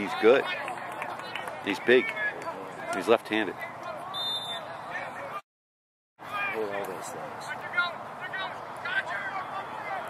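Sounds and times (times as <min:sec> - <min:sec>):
outdoor background noise: 0:00.0 - 0:05.4, 0:06.2 - 0:10.0.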